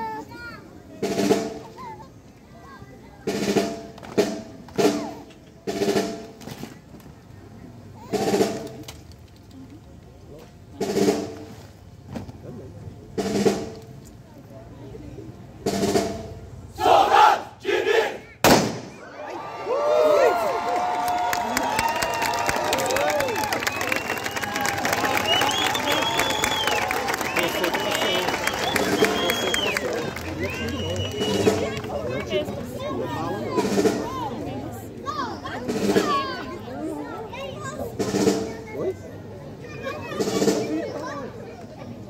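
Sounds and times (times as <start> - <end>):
crowd talking and calling out: 0.0 - 42.0
soldiers shouting in unison: 16.8 - 18.3
crowd cheering: 18.9 - 32.9.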